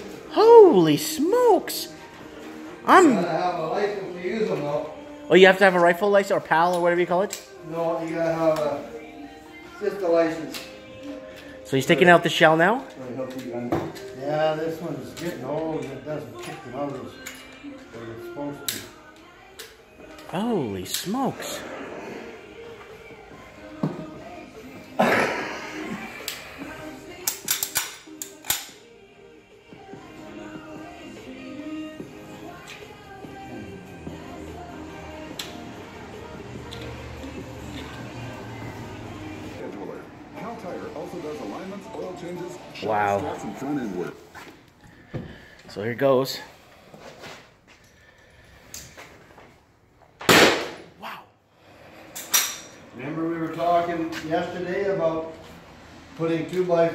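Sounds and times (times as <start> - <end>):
background music: 0.0 - 56.9
nail gun sharp bang: 50.2 - 50.9.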